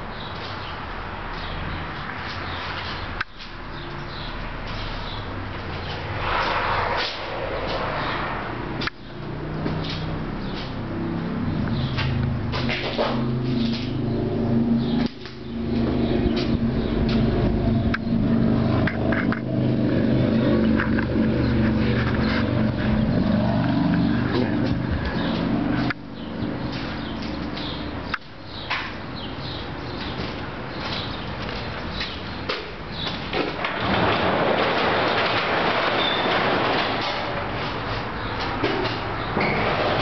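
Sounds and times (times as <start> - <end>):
vehicle engine droning: 0.8 - 40.0
garage door rollers rattling: 32.0 - 40.0
garage door squeak: 33.0 - 40.0.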